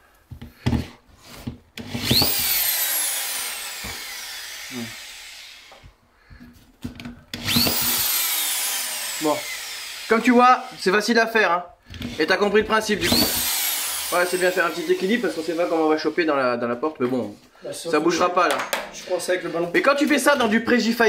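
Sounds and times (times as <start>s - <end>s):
cordless drill whining: 1.8s - 6.4s, 7.0s - 11.1s, 11.8s - 12.3s, 12.9s - 16.2s.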